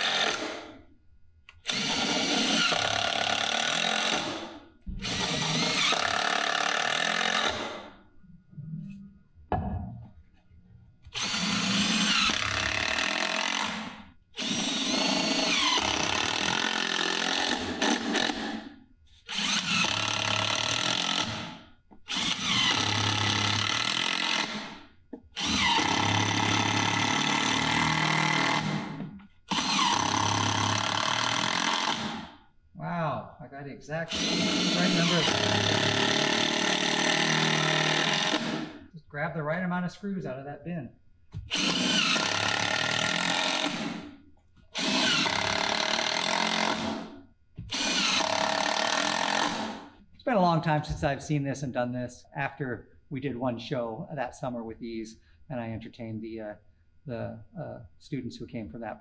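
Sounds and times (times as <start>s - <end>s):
drill-driver motor whine: 11.1s - 13.7s, 19.3s - 21.2s, 29.5s - 32.0s, 34.1s - 38.6s, 41.5s - 43.8s, 47.7s - 49.6s.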